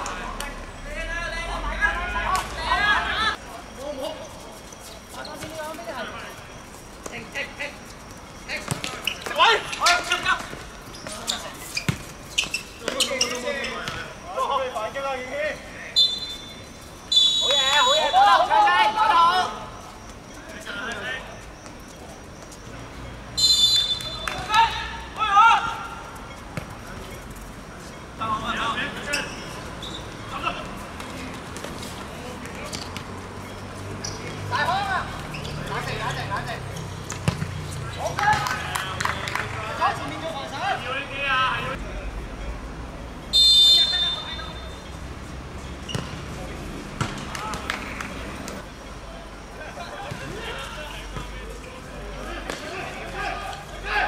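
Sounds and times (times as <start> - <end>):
players shouting: 0.0 - 3.4, 17.0 - 19.8, 23.4 - 26.2, 34.2 - 41.8, 49.7 - 54.0
players calling out: 0.0 - 42.1, 43.3 - 44.9
outdoor background noise: 0.0 - 54.0
ball being kicked: 37.0 - 37.6, 45.9 - 46.2.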